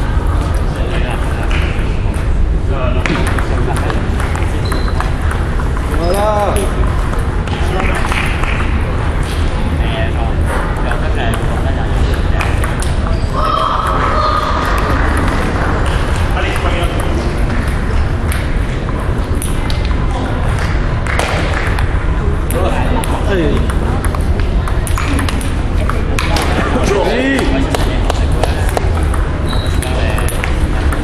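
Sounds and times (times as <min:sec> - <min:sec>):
table tennis ball clicking: 0:22.5 - 0:26.4, 0:27.8 - 0:31.0.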